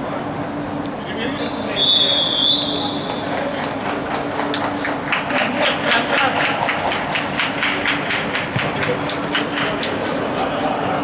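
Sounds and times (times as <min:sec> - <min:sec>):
hands clapping in a hall: 0:02.8 - 0:11.0.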